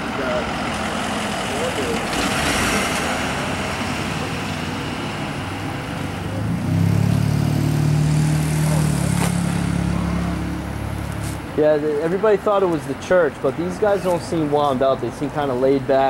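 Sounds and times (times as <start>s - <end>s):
street traffic hiss: 0.0s - 16.0s
vehicle engine humming: 0.0s - 16.0s.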